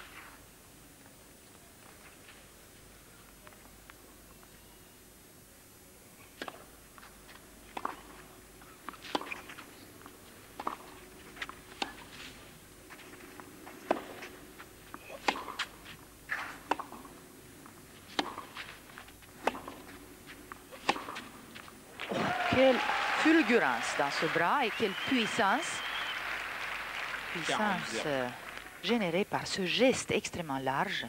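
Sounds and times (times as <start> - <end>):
tennis rackets hitting ball: 6.4 - 6.7, 7.7 - 9.7, 10.6 - 12.3, 13.0 - 24.5.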